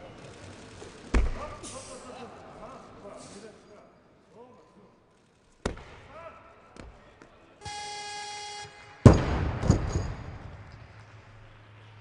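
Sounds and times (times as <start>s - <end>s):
electronic buzzer tone: 7.6s - 9.0s.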